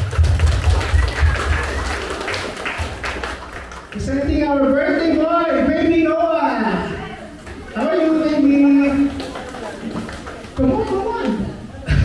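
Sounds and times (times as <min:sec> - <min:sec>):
crowd applauding: 0:00.0 - 0:04.2, 0:08.9 - 0:11.3.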